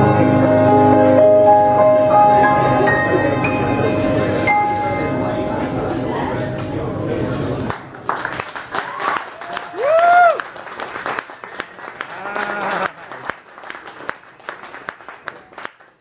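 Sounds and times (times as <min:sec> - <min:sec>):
audience applause: 0:07.7 - 0:16.0
person cheering: 0:08.8 - 0:10.4, 0:12.1 - 0:13.0.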